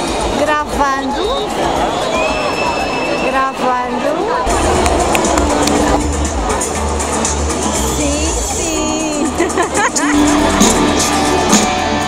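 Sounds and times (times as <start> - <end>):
crowd voices: 0.0 - 12.0
live concert music: 0.0 - 12.0.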